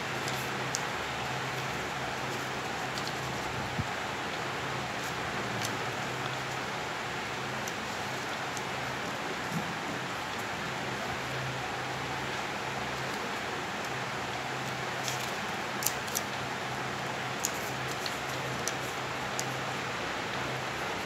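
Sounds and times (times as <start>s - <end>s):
paper being folded and creased: 0.2s - 0.8s, 1.5s - 3.5s, 15.0s - 16.3s, 17.4s - 19.6s.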